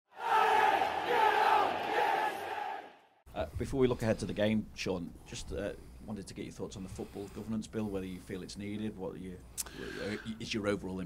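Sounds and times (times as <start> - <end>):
football crowd shouting: 0.1 - 3.2.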